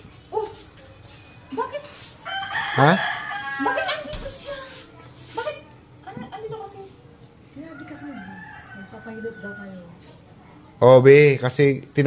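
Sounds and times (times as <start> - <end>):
rooster crowing: 2.2 - 4.3, 7.6 - 10.0.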